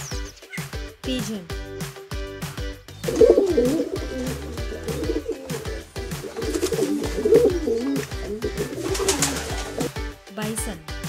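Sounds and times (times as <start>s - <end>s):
background music with beat: 0.0s - 11.0s
pigeons cooing: 2.9s - 10.0s.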